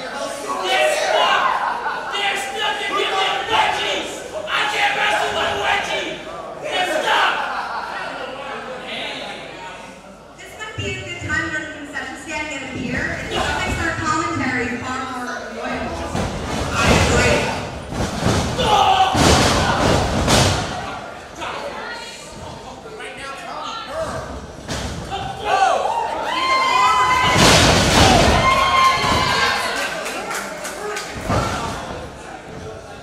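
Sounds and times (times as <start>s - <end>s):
crowd voices: 0.0s - 33.0s.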